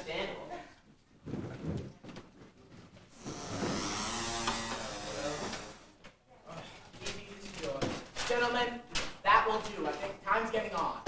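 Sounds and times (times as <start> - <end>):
chairs scraping on wooden floor: 1.2 - 5.8.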